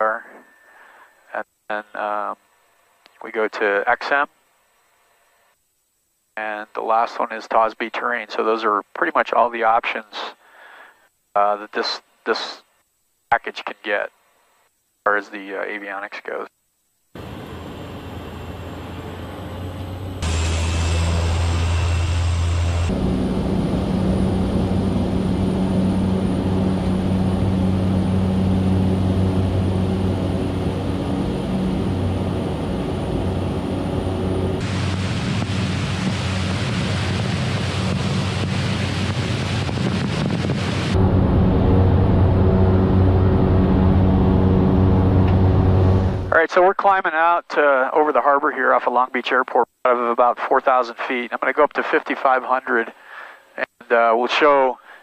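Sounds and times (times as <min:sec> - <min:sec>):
turboprop engine drone: 0:17.2 - 0:46.4.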